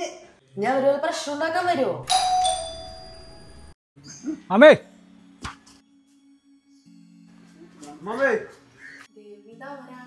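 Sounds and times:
two-note doorbell chime: 2.1s - 3.7s.

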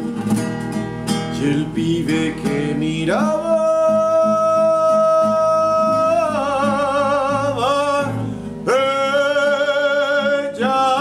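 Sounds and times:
plucked classical guitar: 0.0s - 11.0s
man singing with vibrato: 1.3s - 11.0s.

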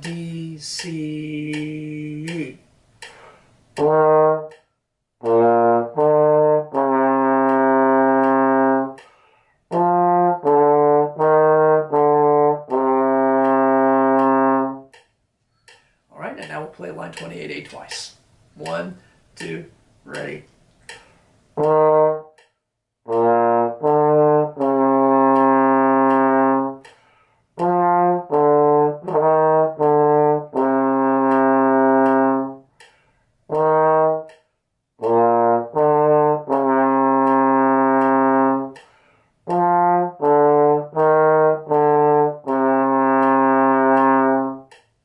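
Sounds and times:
trombone playing: 3.8s - 4.6s, 5.2s - 15.0s, 21.6s - 22.4s, 23.1s - 26.9s, 27.6s - 32.7s, 33.5s - 34.4s, 35.0s - 38.8s, 39.4s - 44.7s.

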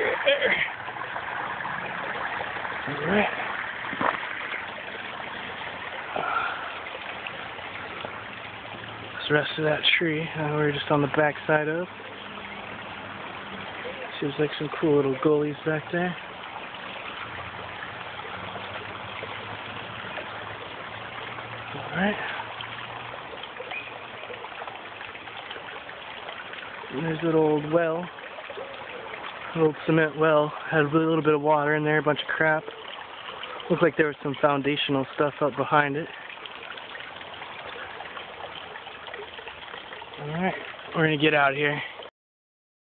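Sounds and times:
stream flowing: 0.0s - 42.1s.

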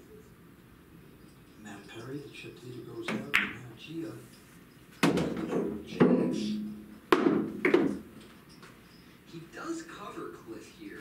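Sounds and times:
pool balls clacking: 1.2s - 3.8s, 5.0s - 8.5s.

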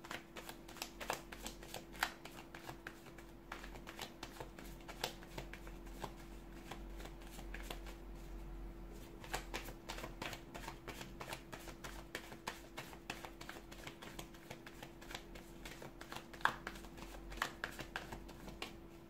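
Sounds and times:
cards being shuffled: 0.0s - 8.0s, 9.2s - 18.7s.

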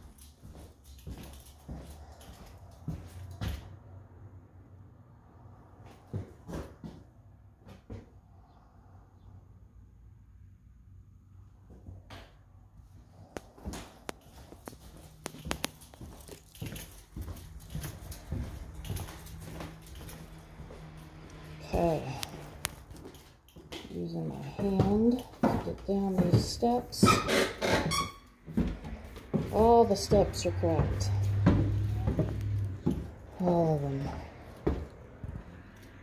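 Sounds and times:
footsteps on wooden floor: 0.0s - 3.7s, 13.5s - 36.0s.

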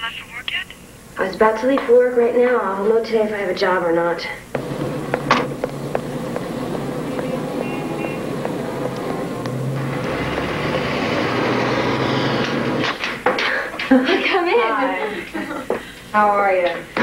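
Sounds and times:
street traffic: 4.5s - 13.2s
car engine at low revs: 4.6s - 12.9s
car door shutting: 4.6s - 13.0s.

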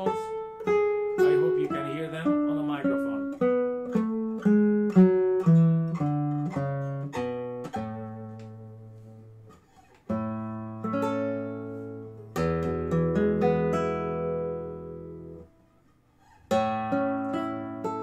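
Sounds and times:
classical guitar fingerstyle: 0.0s - 18.0s.

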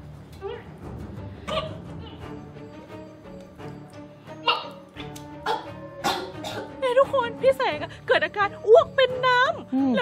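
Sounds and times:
background music: 0.0s - 10.0s
woman retching and coughing: 4.4s - 6.8s.

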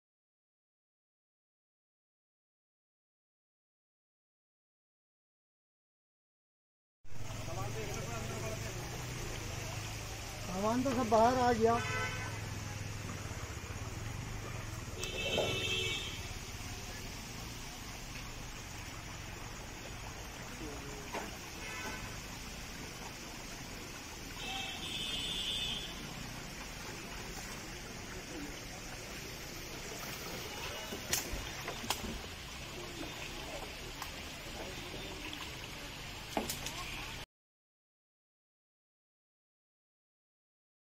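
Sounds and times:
vehicle horn: 11.6s - 12.6s, 14.5s - 16.4s, 21.5s - 22.2s, 24.4s - 26.1s.

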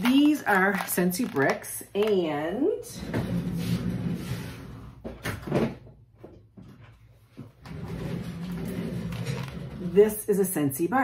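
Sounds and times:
rummaging and handling noise: 0.0s - 2.4s.

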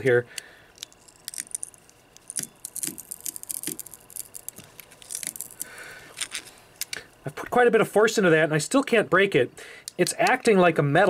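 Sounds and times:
pliers clicking and scraping on stone: 0.8s - 6.4s.

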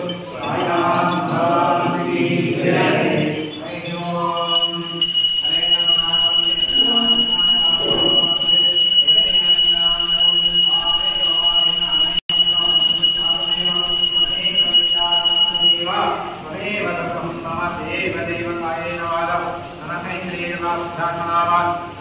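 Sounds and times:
group devotional chanting: 0.3s - 9.8s.

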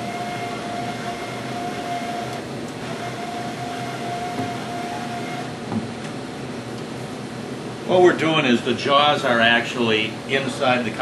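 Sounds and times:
motor whine: 0.0s - 5.6s
ventilation noise: 0.0s - 11.0s.

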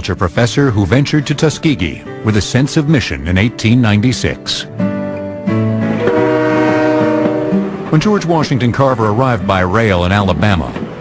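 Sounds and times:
steam locomotive whistle: 5.9s - 8.2s.

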